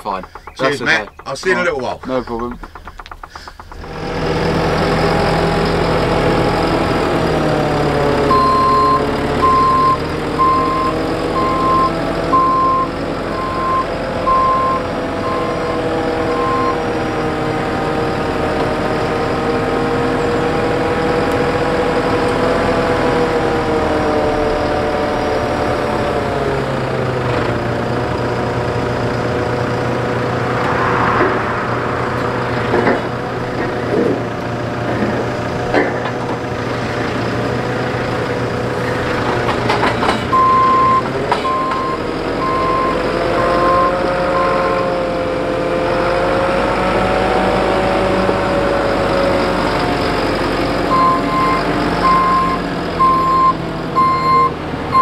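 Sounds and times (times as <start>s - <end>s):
diesel engine running: 0.0s - 55.0s
reversing alarm beeping: 8.3s - 16.8s, 40.3s - 44.6s, 50.9s - 55.0s.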